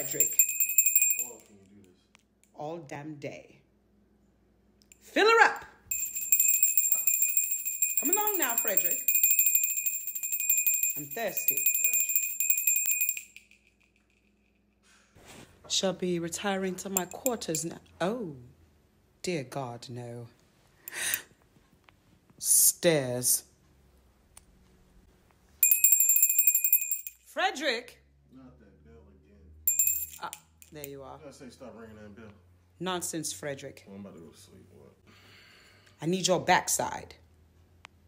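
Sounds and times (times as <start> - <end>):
handheld bell ringing rapidly: 0.0 - 1.6, 5.9 - 14.5, 17.0 - 17.7, 25.6 - 27.2, 29.7 - 30.8.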